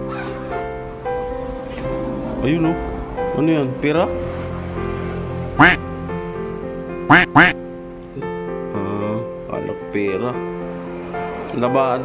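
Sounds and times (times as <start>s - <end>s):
duck quacks: 5.6s - 5.8s, 7.1s - 7.6s.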